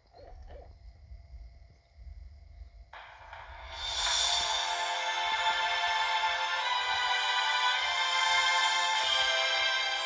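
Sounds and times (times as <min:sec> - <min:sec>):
music over tv speakers: 0:03.0 - 0:10.0.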